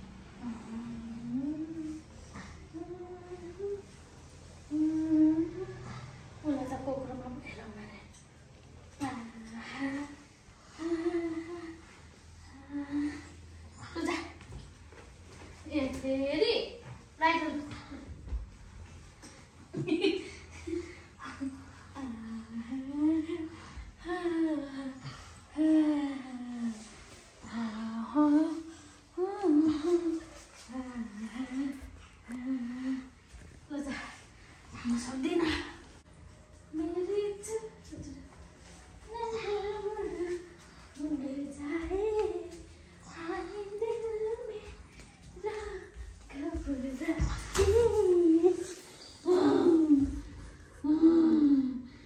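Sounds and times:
woman humming lullaby: 0:00.4 - 0:03.9, 0:04.7 - 0:06.1
woman humming: 0:00.4 - 0:04.0, 0:04.7 - 0:06.1, 0:45.4 - 0:52.0.

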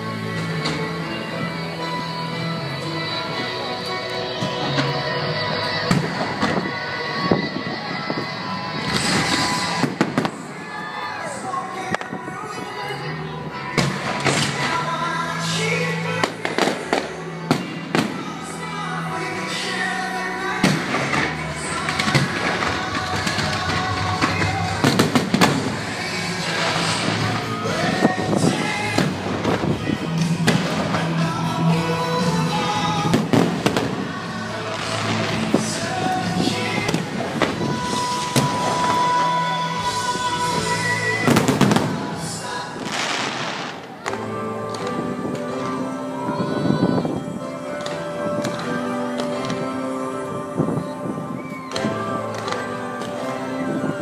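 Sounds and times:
music: 0:00.0 - 0:54.0
firework bangs: 0:05.8 - 0:11.0, 0:16.2 - 0:18.4, 0:20.6 - 0:31.2, 0:33.0 - 0:45.8.

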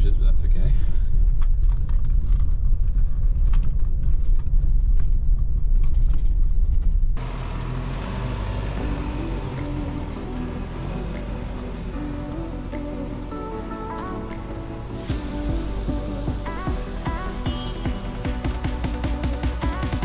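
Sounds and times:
vehicle rumbling on rough track: 0:00.0 - 0:14.9
background music: 0:07.2 - 0:20.0.

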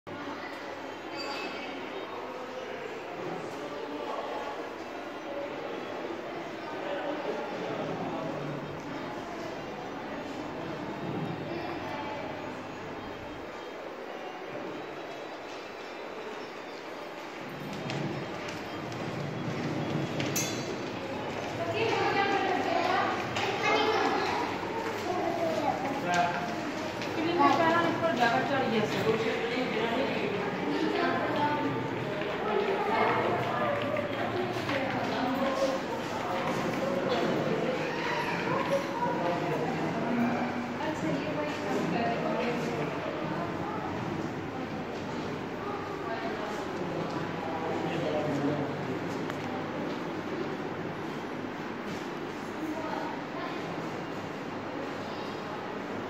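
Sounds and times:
steady room noise: 0:00.1 - 0:56.0.

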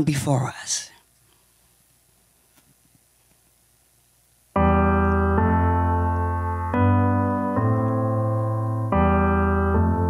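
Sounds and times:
piano-toned keyboard chord: 0:04.5 - 0:10.0.

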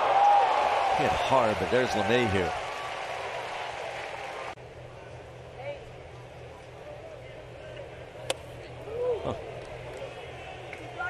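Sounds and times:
ballpark crowd hum: 0:00.0 - 0:11.0.

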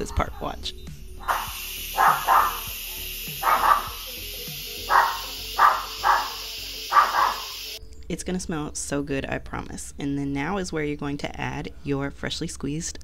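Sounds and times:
small dog barking sharply: 0:01.2 - 0:02.6, 0:03.4 - 0:04.0, 0:04.9 - 0:07.5
pressure cooker steam hissing: 0:01.2 - 0:07.8.

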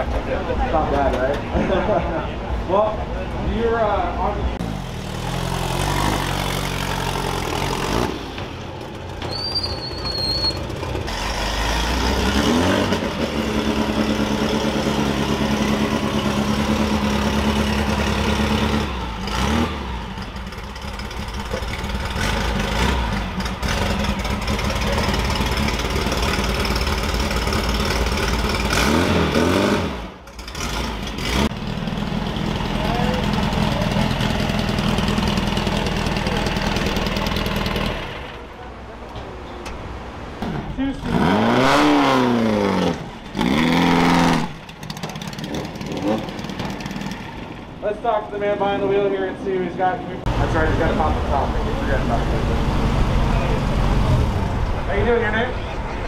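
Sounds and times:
race car engines idling: 0:00.0 - 0:28.8, 0:30.1 - 0:41.2, 0:44.5 - 0:56.0
engine revving: 0:04.6 - 0:08.7, 0:10.2 - 0:38.4, 0:40.4 - 0:47.6, 0:50.2 - 0:55.3.

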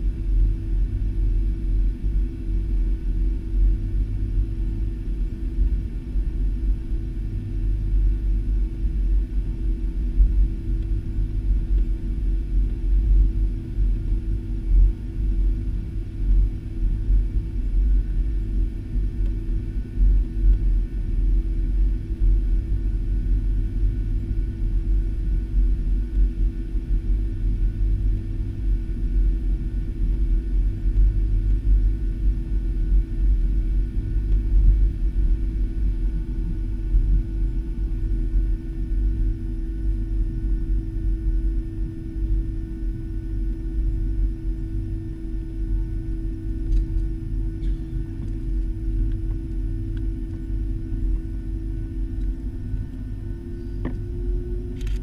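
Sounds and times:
airplane cabin rumble: 0:00.0 - 0:55.0
faint steady hum: 0:00.0 - 0:55.0.

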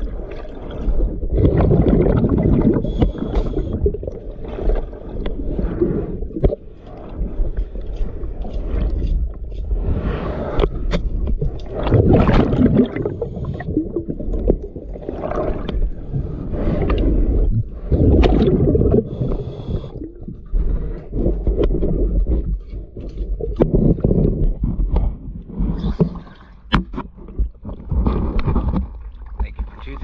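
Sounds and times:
underwater bubbles gurgling: 0:00.0 - 0:30.0.

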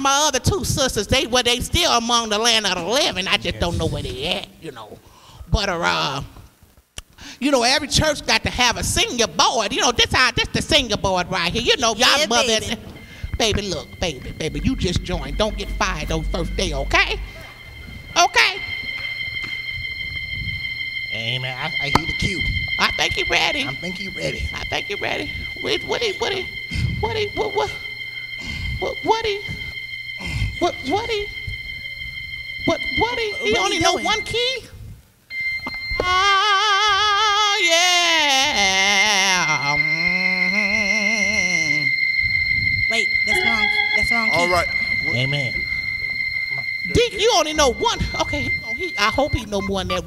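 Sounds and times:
high-pitched whine: 0:07.8 - 0:34.7, 0:38.3 - 0:50.0
church organ high note: 0:11.0 - 0:34.7, 0:38.6 - 0:50.0.

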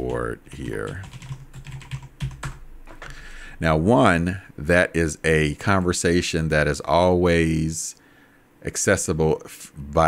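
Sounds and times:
computer keyboard typing: 0:00.0 - 0:03.0.

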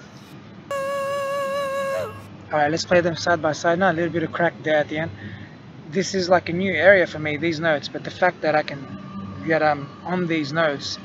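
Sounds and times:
man singing high note: 0:00.7 - 0:02.2.

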